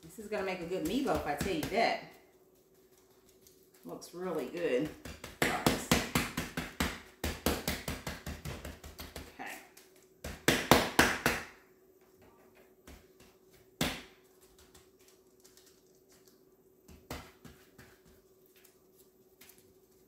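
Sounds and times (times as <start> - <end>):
hands patting meat mixture: 0.0 - 20.0.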